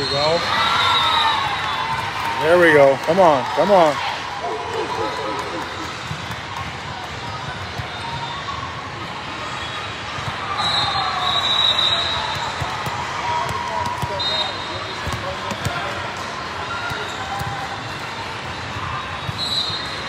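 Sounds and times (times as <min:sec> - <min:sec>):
din of many voices: 0:02.4 - 0:08.0
referee's whistle: 0:10.5 - 0:12.7, 0:14.0 - 0:15.8, 0:19.0 - 0:20.0.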